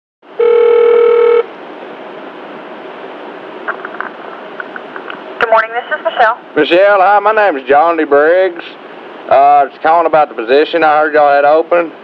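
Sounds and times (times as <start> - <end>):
phone line hiss: 0.4 - 1.5
steady telephone tone: 0.4 - 1.5.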